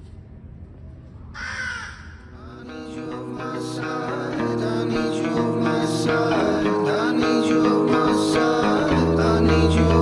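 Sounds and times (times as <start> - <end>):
faint ambient music: 0.0 - 10.0
plucked guitar: 2.7 - 10.0.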